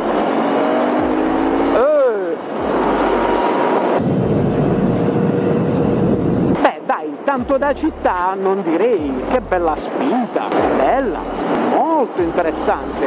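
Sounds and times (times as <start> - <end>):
motorcycle engine accelerating: 0.0 - 6.6
wind rush on microphone: 3.8 - 6.6.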